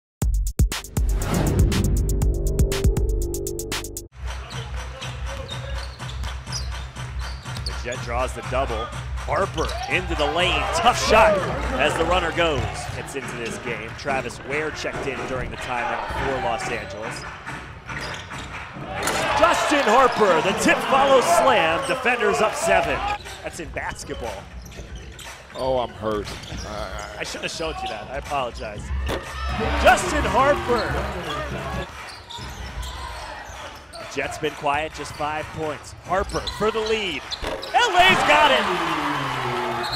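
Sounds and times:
arena background music: 0.7s - 17.8s, 27.2s - 32.1s
indoor arena murmur: 4.2s - 39.9s.

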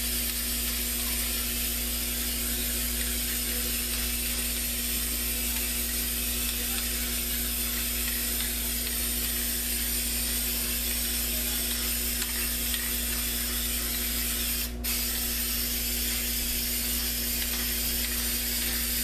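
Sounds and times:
spray paint can hissing: 0.0s - 19.0s.

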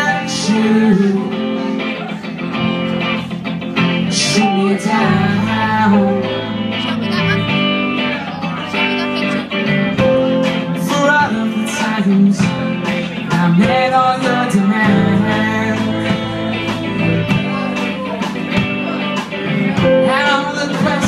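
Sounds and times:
electric guitars: 0.0s - 21.0s
rock band playing: 0.0s - 21.0s.

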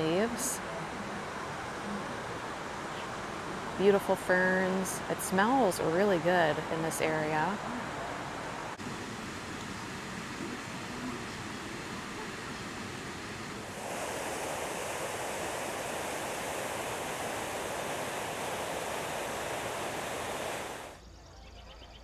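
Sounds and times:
waterfall rushing over rocks: 5.8s - 21.0s.

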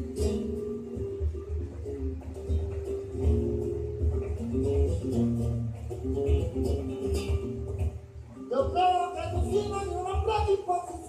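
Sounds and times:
flamenco acoustic guitar music: 0.0s - 11.0s.

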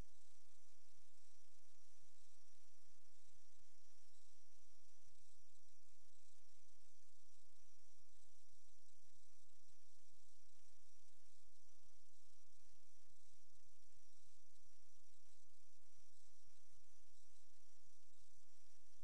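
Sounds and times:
faint high-pitched whines: 0.0s - 19.0s.

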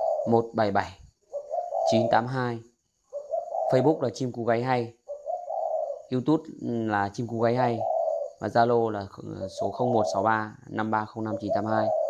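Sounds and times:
dove cooing: 0.0s - 12.0s
man's voice: 1.9s - 2.6s, 3.7s - 4.9s, 6.1s - 12.0s.

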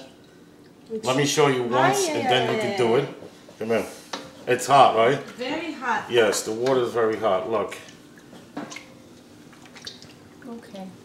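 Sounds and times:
wet squishes and drips: 7.7s - 10.9s.

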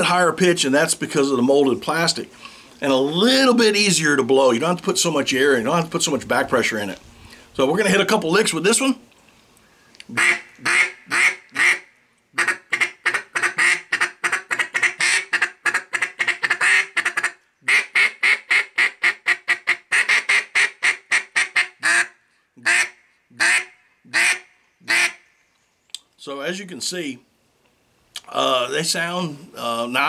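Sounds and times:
plastic duck call quacks: 10.1s - 25.2s.

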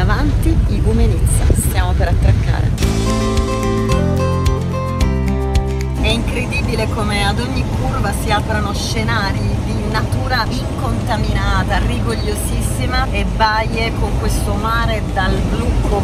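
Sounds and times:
woman talking: 0.0s - 2.8s, 6.0s - 16.0s
car road and engine rumble: 0.0s - 16.0s.

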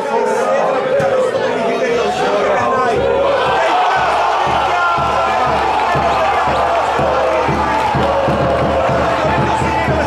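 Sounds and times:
crowd chanting in unison: 0.0s - 10.0s
crowd cheering: 0.0s - 10.0s
drum beating: 2.5s - 10.0s.

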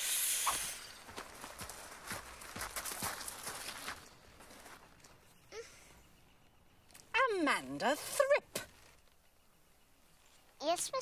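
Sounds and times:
short hiss: 0.0s - 1.0s
footsteps on gravel: 0.5s - 5.2s.

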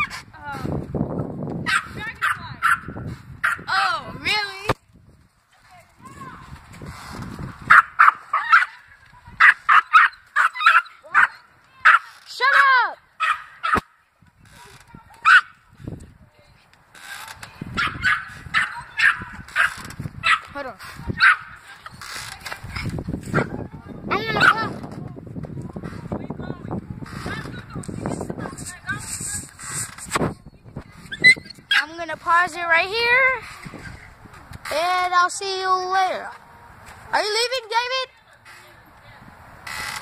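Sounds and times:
dog barking sharply: 1.7s - 3.6s, 12.6s - 13.8s
dog barking: 1.7s - 3.7s, 7.7s - 8.8s, 9.4s - 12.0s, 12.6s - 13.8s, 15.2s - 15.5s, 17.8s - 20.5s, 21.2s - 21.5s.

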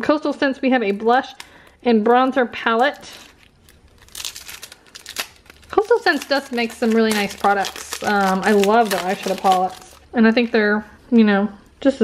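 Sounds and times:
plastic wrap crinkling: 0.9s - 10.8s.

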